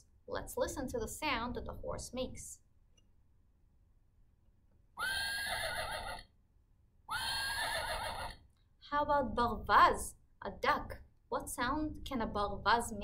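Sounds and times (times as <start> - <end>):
recorded horse whinny from speaker: 5.0 - 6.3, 7.1 - 8.4.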